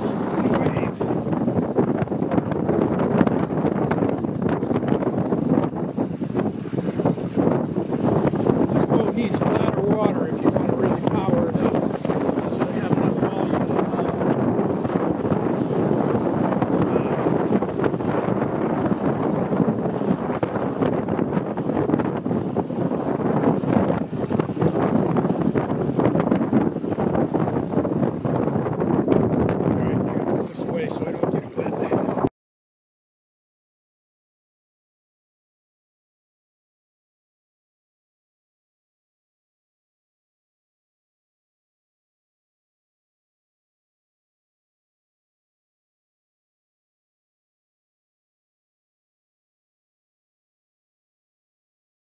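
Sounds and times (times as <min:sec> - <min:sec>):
water slapping against hull: 0:00.0 - 0:32.3
wind buffeting microphone: 0:00.0 - 0:32.3.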